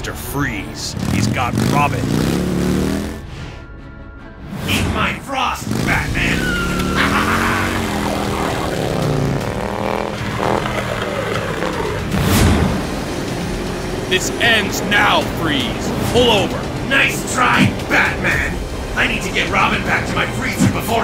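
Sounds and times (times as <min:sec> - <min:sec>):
motorcycle engine: 0:00.0 - 0:03.3, 0:05.6 - 0:21.0
truck engine speeding: 0:00.0 - 0:03.4, 0:04.6 - 0:21.0
action music: 0:00.0 - 0:21.0.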